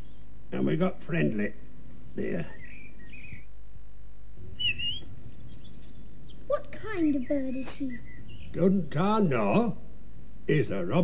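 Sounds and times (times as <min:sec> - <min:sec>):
robin chirp: 0:00.0 - 0:01.3, 0:02.0 - 0:03.6, 0:04.4 - 0:10.7.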